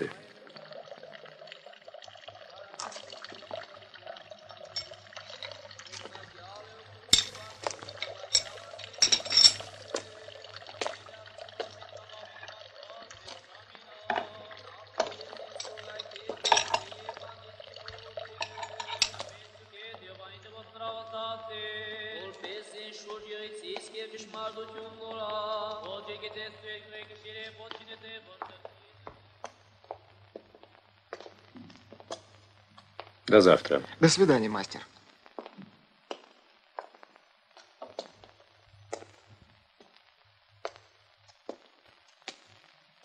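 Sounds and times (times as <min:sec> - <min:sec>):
hand tools clinking: 0:07.1 - 0:10.1, 0:15.0 - 0:17.2, 0:18.4 - 0:19.3.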